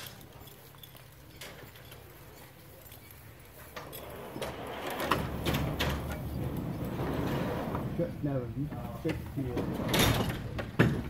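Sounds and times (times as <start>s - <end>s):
trolley and pulleys clattering: 0.0s - 11.0s.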